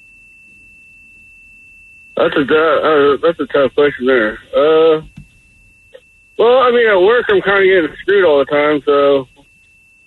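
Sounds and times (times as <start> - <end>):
high-pitched electronic tone: 2.2 - 10.0.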